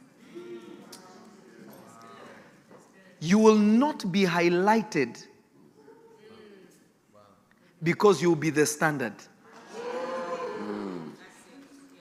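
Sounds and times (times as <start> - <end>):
preacher's voice: 7.8 - 9.3.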